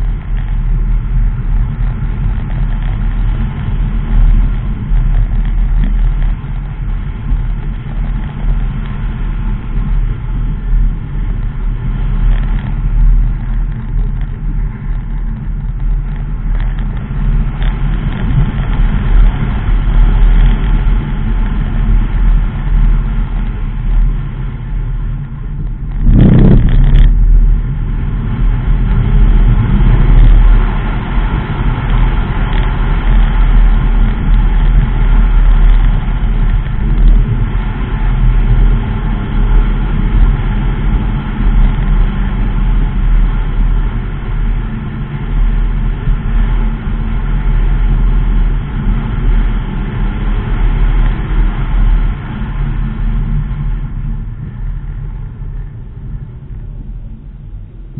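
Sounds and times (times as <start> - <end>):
car engine and tyre rumble: 0.0 - 57.9
loud burst of noise: 17.8 - 41.9.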